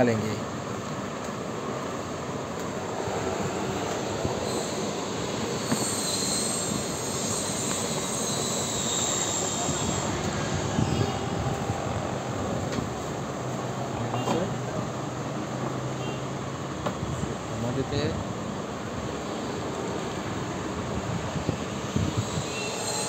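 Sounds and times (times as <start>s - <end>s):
steady rushing noise: 0.0s - 7.9s, 9.0s - 14.1s, 16.6s - 23.0s.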